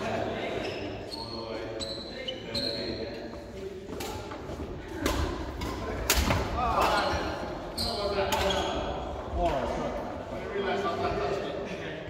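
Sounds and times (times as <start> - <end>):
sharp knocks echoing in a hall: 2.7 - 10.2.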